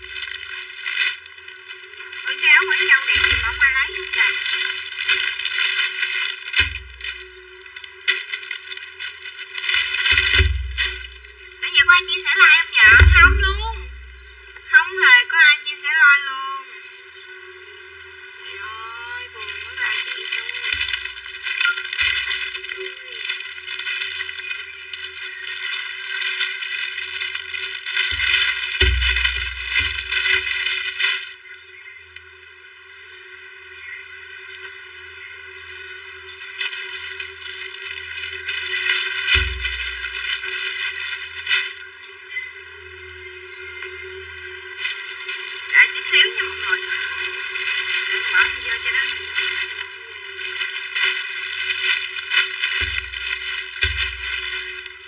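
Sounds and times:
plastic bags crinkling: 0.0s - 14.7s, 18.3s - 31.7s, 35.4s - 42.9s, 43.6s - 55.0s.

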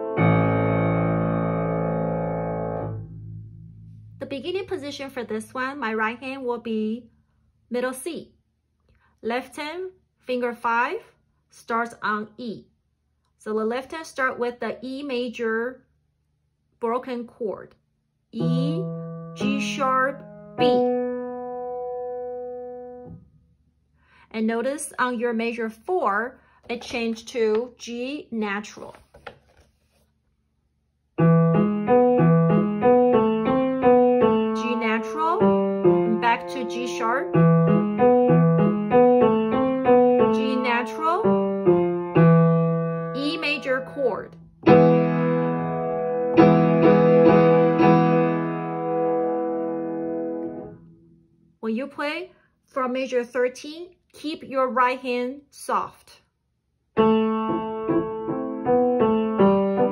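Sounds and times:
piano note ringing: 0.0s - 5.2s, 18.4s - 23.4s
piano chord and notes: 0.0s - 5.3s, 18.4s - 23.5s, 31.2s - 51.2s, 57.0s - 59.9s.

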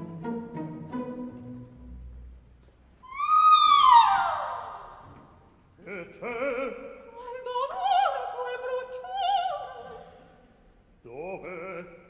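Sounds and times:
operatic soprano shriek: 3.0s - 5.0s.

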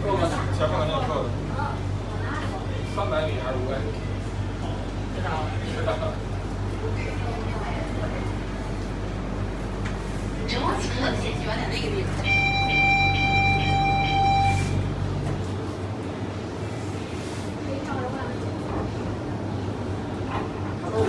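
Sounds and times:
electronic warning beep: 12.2s - 14.9s.

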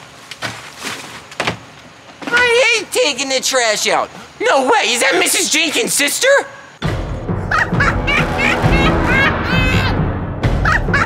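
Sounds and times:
background music with low tones: 6.8s - 11.0s
witch cackling laugh: 7.4s - 9.9s, 10.5s - 11.0s.

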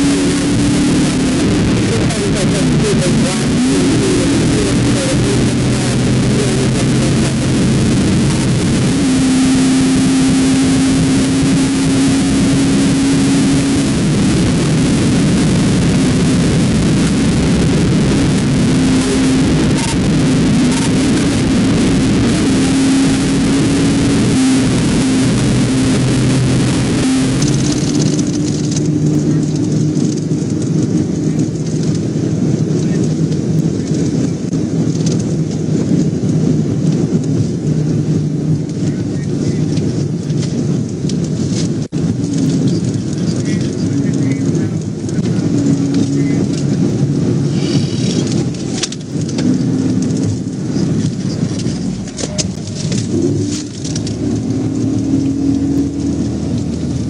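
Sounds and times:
low engine drone: 0.0s - 57.0s
road and wind noise: 0.0s - 57.0s.

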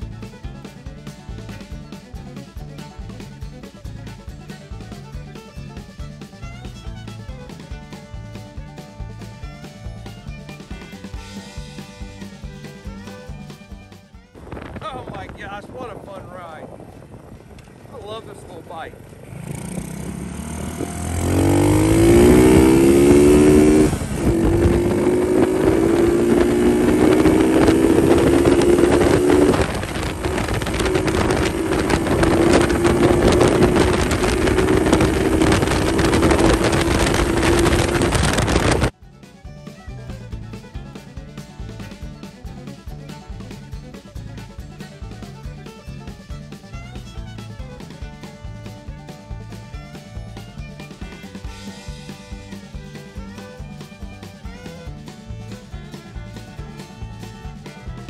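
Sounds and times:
motorcycle engine accelerating: 0.0s - 15.1s, 16.7s - 39.0s, 39.6s - 58.0s
music with drum beat: 0.0s - 16.2s, 20.5s - 58.0s
wind noise: 14.2s - 39.0s.

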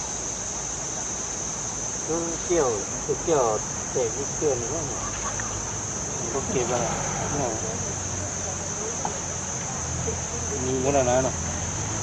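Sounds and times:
insects droning in chorus: 0.0s - 12.0s.

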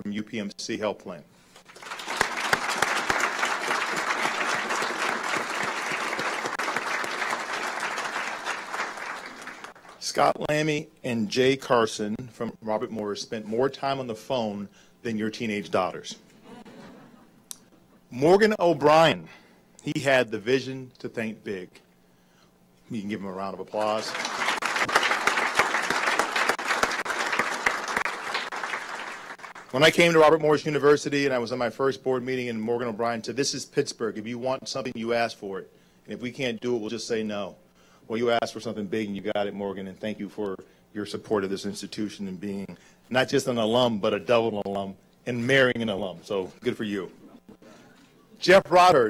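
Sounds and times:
audience applauding: 1.7s - 10.0s, 23.9s - 29.8s.

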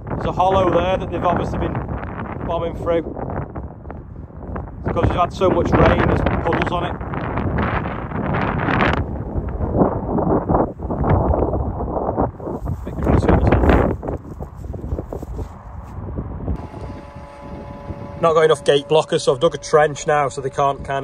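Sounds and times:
wind buffeting microphone: 0.0s - 21.0s
even electronic tones: 16.6s - 21.0s.

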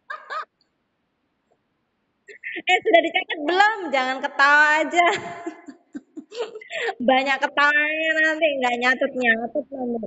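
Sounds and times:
child laughing: 0.0s - 0.6s, 5.0s - 7.0s.

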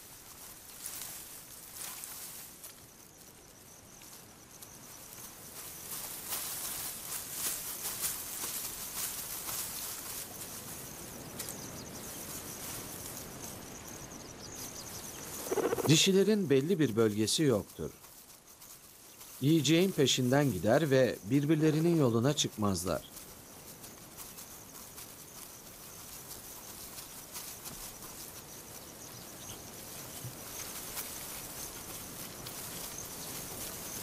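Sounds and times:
faint hiss with crackles: 0.0s - 34.0s
insect trilling: 9.6s - 34.0s.

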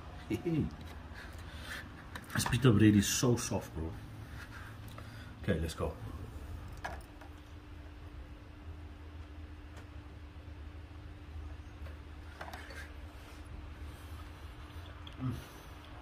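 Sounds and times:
low hum: 3.5s - 16.0s.

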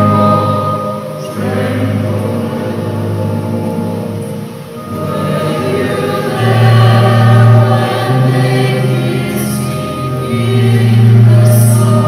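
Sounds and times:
choir singing: 0.0s - 12.0s.

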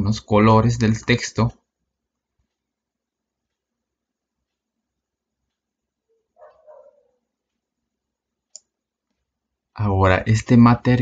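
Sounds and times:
computer mouse click: 8.4s - 9.3s.

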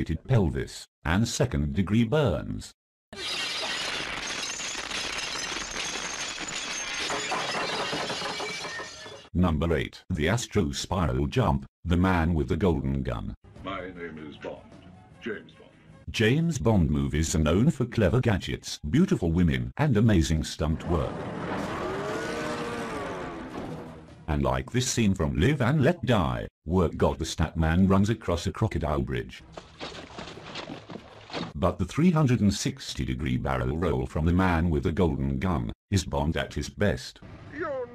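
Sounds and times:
glass shattering: 3.2s - 9.3s
vehicle engine and road noise: 20.8s - 24.3s.

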